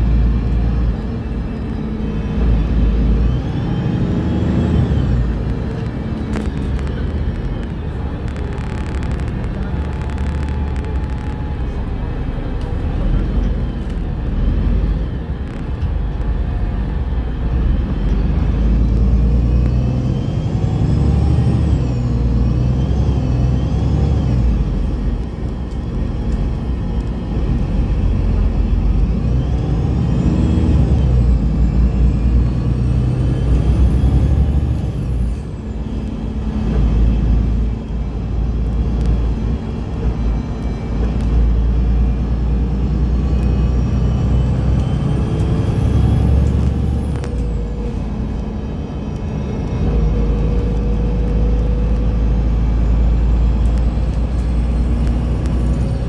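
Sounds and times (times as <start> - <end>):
road and tyre rumble: 0.0 - 56.0.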